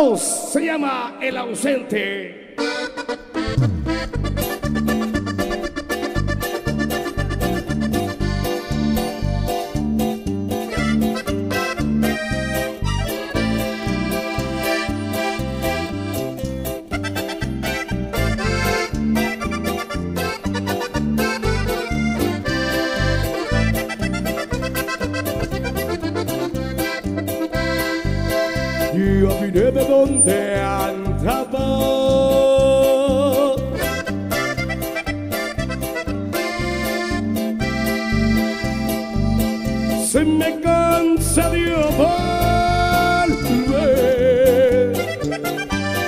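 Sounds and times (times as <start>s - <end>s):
button accordion: 2.6s - 29.5s, 33.6s - 46.0s
steady bass beat: 3.3s - 32.9s, 33.6s - 46.0s.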